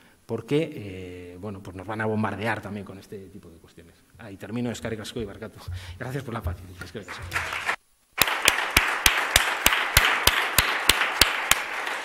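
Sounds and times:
audience applauding: 7.1s - 12.0s
loud sharp hand claps: 7.1s - 12.0s.

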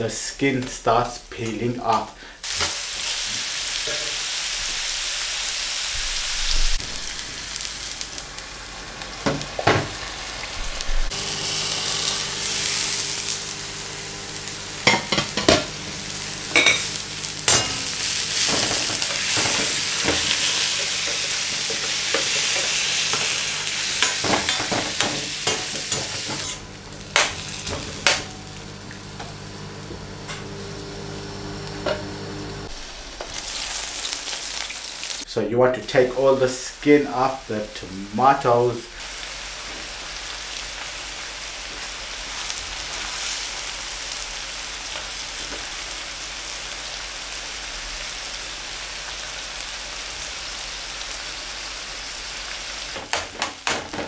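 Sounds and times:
vegetables sizzling in oil: 1.8s - 54.0s
metal utensil scraping pan: 16.5s - 26.6s
steady low hum: 23.1s - 33.2s.

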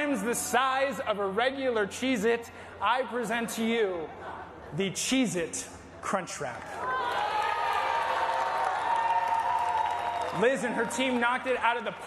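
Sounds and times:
audience cheering: 6.8s - 11.5s
audience applauding: 7.1s - 11.4s.

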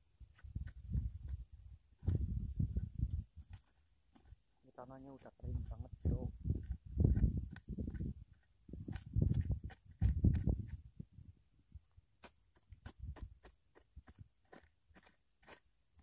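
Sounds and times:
hand hoe chopping soil: 0.2s - 2.5s, 5.1s - 10.9s, 12.1s - 16.0s.

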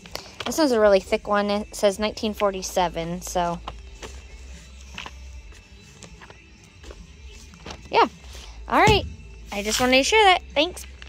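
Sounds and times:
faint background music: 0.0s - 11.0s
paper pages rustling: 3.6s - 7.9s.

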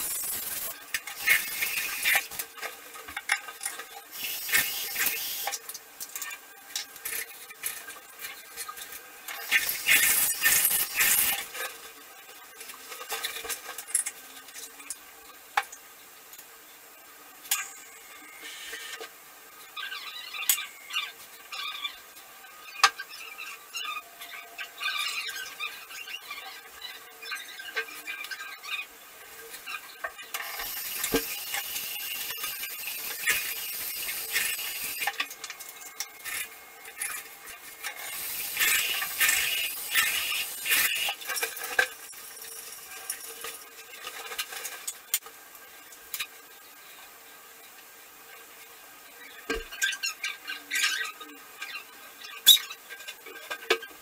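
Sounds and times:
steady hiss: 0.0s - 3.3s, 3.9s - 22.6s, 29.0s - 49.3s.

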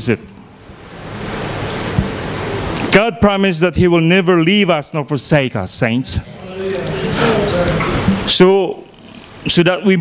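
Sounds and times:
sound system hiss and hum: 0.0s - 10.0s
man speaking: 2.9s - 10.0s.

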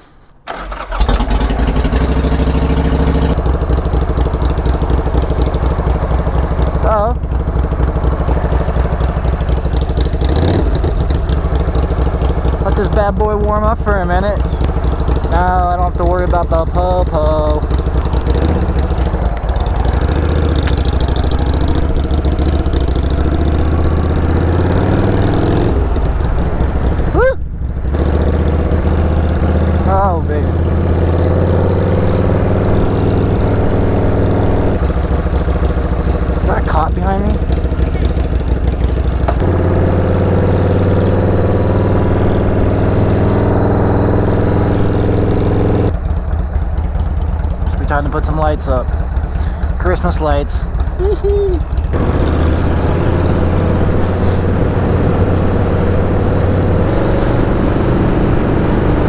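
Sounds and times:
motorcycle engine riding: 0.4s - 59.0s.

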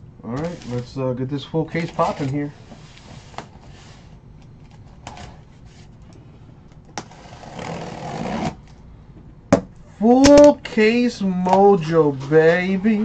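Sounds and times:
cardboard rustling scrape: 0.4s - 0.9s, 1.7s - 4.2s, 7.1s - 8.6s.

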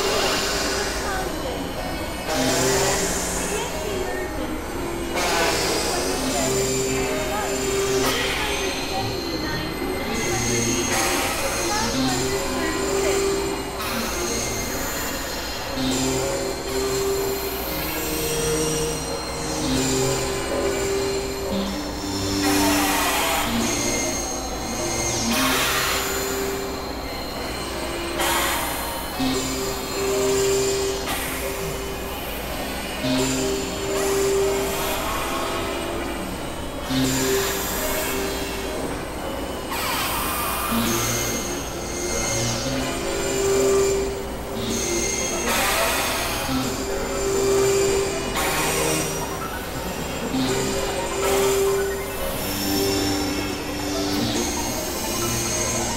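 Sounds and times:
low held synth tone: 0.0s - 55.9s
high squealing synth tones: 5.0s - 55.9s
hissing synthesizer noise: 9.0s - 55.9s
high whistling tones: 39.8s - 55.9s.

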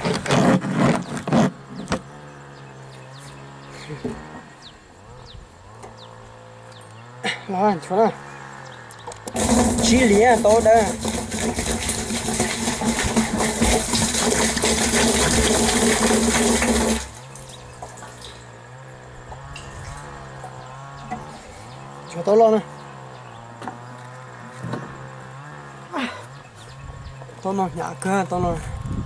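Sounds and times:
liquid pouring into plastic barrel: 9.4s - 17.2s.

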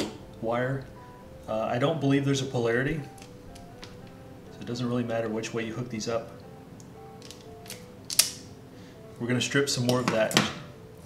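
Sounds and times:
quiet background music: 0.0s - 11.0s
wire stripper clicking and snapping: 6.8s - 8.5s.

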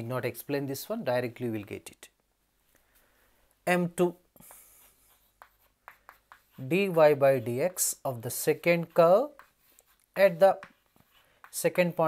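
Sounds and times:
chalk scratching on chalkboard: 4.4s - 12.0s
chalk tapping: 4.4s - 12.0s.

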